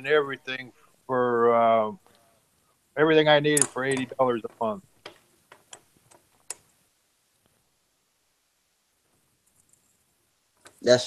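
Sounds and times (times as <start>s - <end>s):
faint clicks: 9.4s - 10.0s.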